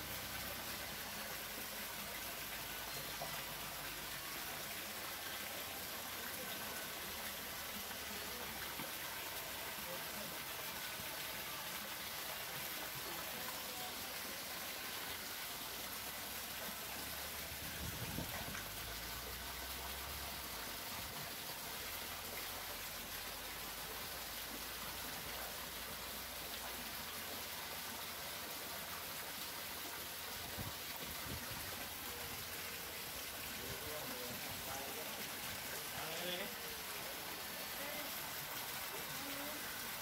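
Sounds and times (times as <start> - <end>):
water running and splashing: 0.0 - 40.0.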